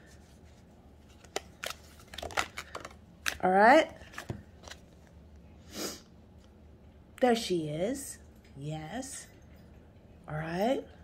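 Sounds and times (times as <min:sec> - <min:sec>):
cards being shuffled: 0:01.0 - 0:05.0.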